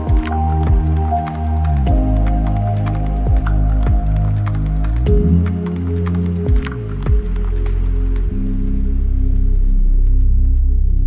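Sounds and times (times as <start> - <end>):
light ticking percussion: 0.0 - 10.7
deep bass tones and chords: 0.0 - 11.0.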